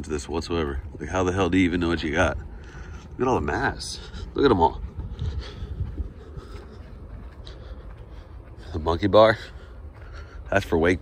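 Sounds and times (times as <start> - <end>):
faint outdoor background noise: 0.0 - 11.0
wind buffeting microphone: 0.0 - 11.0.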